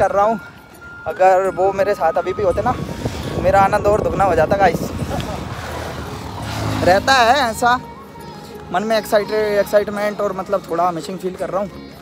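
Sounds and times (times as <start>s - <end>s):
motor vehicle passing: 2.5s - 8.0s.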